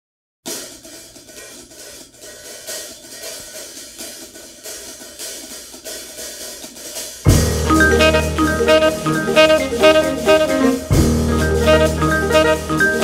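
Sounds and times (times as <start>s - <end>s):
jazz drum kit playing softly: 0.5s - 13.0s.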